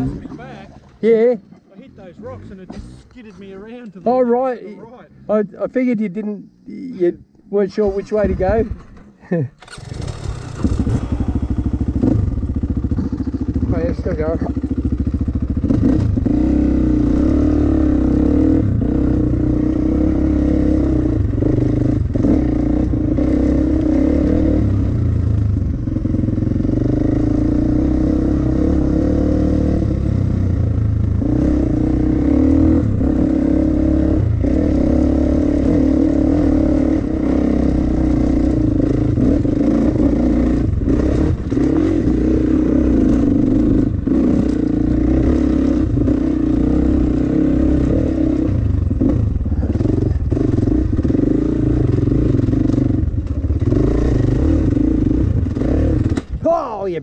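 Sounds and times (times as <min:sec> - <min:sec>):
dirt bike engine running: 0:09.7 - 0:57.0.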